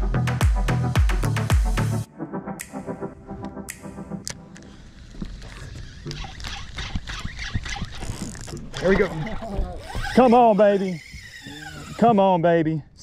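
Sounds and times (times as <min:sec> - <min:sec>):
electronic music: 0:00.0 - 0:04.9
fishing reel clicking whir: 0:04.6 - 0:12.1.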